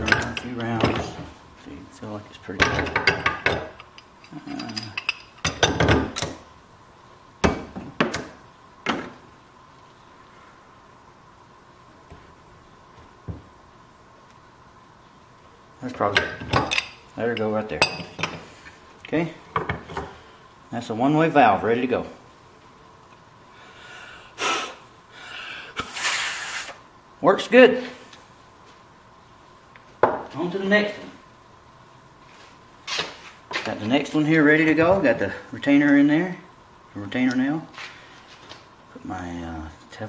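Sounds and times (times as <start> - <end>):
airy hiss: 23.5 - 26.9
breath puff through valve: 24.4 - 26.8.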